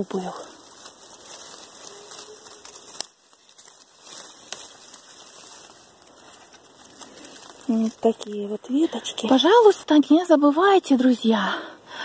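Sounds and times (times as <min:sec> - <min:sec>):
leaves and twigs rustling: 0:00.0 - 0:11.4.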